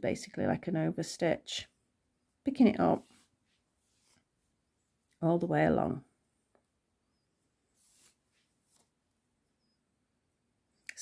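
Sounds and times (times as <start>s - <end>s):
soft yarn rustles: 2.3s - 9.8s.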